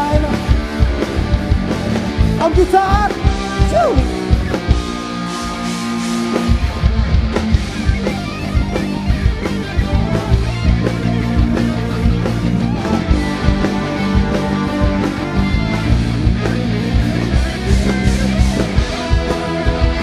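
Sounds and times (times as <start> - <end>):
bass guitar: 0.0 - 20.0
drum kit: 0.0 - 20.0
electric guitar lead: 0.0 - 20.0.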